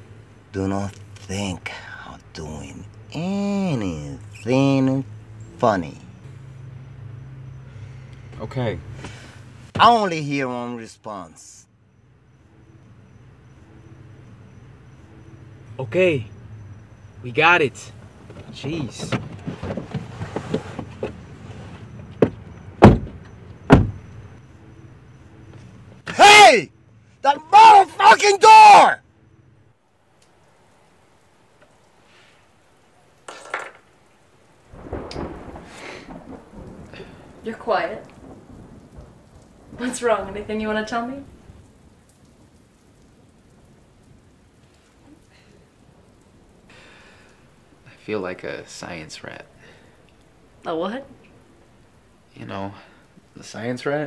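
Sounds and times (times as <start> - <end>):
faint background hiss: 0.0 - 54.0
car door slamming: 22.0 - 24.0.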